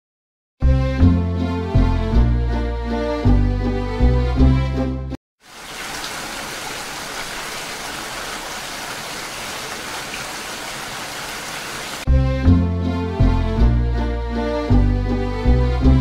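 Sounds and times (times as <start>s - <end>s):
music: 0.6s - 5.2s, 12.1s - 16.0s
rain falling on water: 5.4s - 12.1s.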